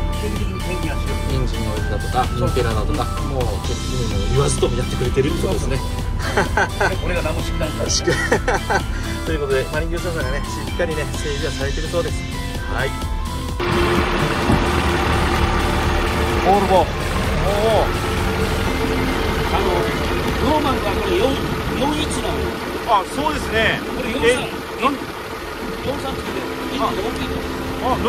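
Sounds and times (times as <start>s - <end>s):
background music: 0.0s - 28.0s
diesel engine rumbling: 0.0s - 28.0s
voices: 13.7s - 28.0s.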